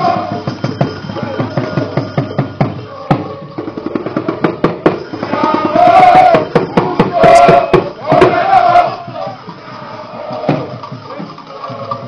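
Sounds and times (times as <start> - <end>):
drums beating fast rhythm: 0.0 - 12.0.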